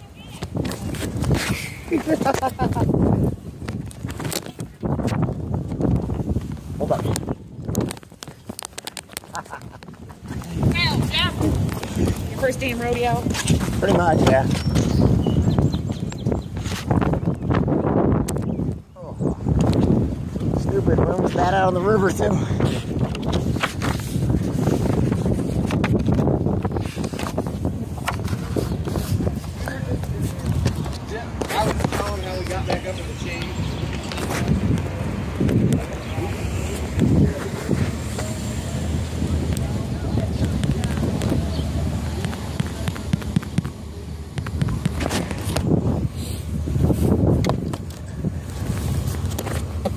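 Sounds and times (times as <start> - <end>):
slow vehicle rumble: 0.0 - 49.9
wind buffeting microphone: 0.0 - 49.9.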